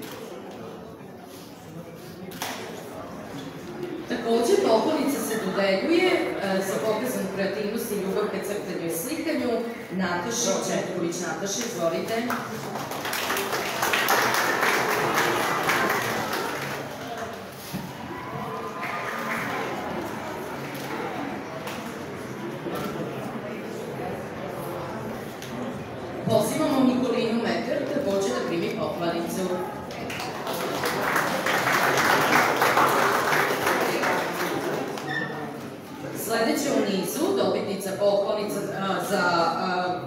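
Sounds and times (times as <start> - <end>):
audience applauding: 12.3 - 20.7, 29.9 - 35.2.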